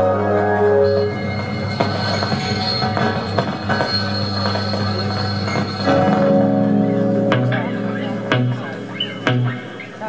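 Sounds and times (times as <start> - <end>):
high squealing tone: 0.0 - 10.0.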